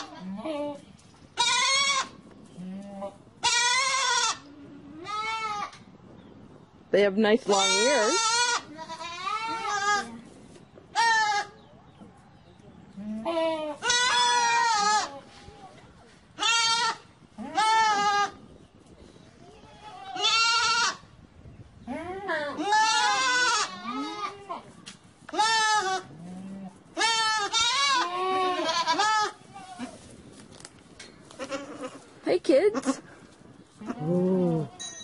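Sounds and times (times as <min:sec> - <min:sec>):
goats bleating: 0:01.4 - 0:05.7, 0:07.5 - 0:10.2, 0:13.0 - 0:15.2, 0:16.4 - 0:18.3, 0:19.6 - 0:21.0, 0:21.9 - 0:24.6, 0:25.3 - 0:30.0, 0:31.3 - 0:32.1.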